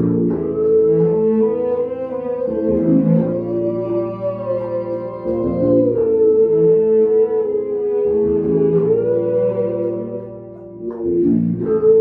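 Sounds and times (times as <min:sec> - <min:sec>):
bowed cello notes: 0:00.0 - 0:12.0
electric bass: 0:00.0 - 0:12.0
keyboard: 0:00.0 - 0:12.0.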